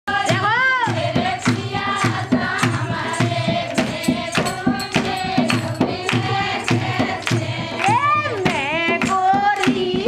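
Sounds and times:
percussion beat: 0:00.1 - 0:10.0
hand clapping: 0:00.8 - 0:10.0
person singing folk song: 0:07.8 - 0:10.0.

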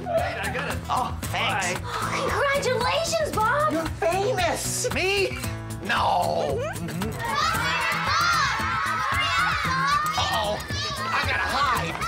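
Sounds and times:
background music: 0:00.0 - 0:12.0
children shouting: 0:07.2 - 0:12.0.

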